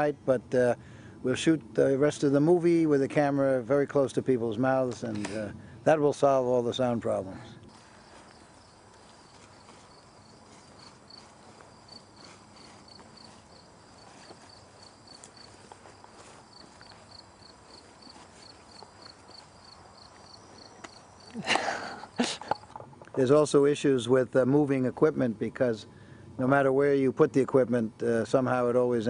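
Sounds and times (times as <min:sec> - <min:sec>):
cricket chirping: 0:07.7 - 0:23.2.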